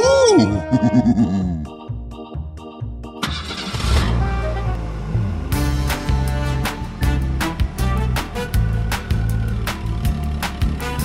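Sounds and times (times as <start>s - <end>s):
background music: 0.0s - 11.0s
car engine starting and running: 3.1s - 11.0s.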